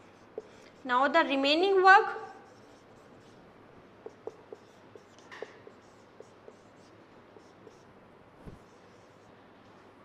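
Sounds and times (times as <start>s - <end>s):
marker squeaking on whiteboard: 0.0s - 0.9s, 2.3s - 9.3s.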